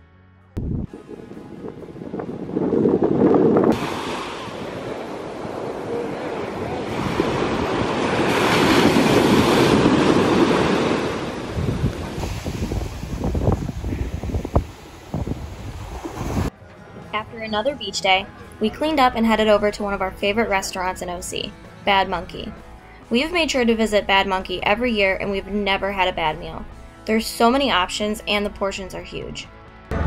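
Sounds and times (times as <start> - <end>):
wind buffeting microphone: 0.6 - 16.5
ocean surf breaking on beach: 3.1 - 16.5.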